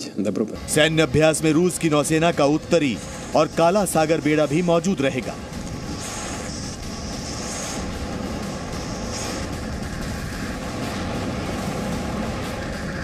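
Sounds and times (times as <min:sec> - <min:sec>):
steady low rumbling: 0:00.6 - 0:13.0
hiss: 0:01.8 - 0:13.0.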